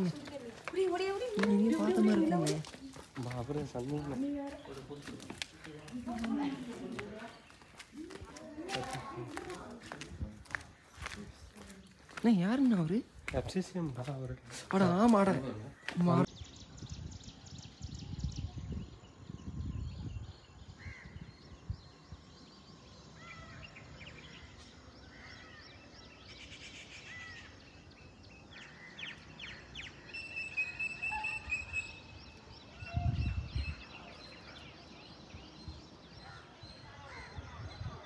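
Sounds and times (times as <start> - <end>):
birds calling and chirping: 0.0 - 38.0
wind rumble on microphone: 16.3 - 22.8, 32.4 - 34.4, 35.0 - 38.0.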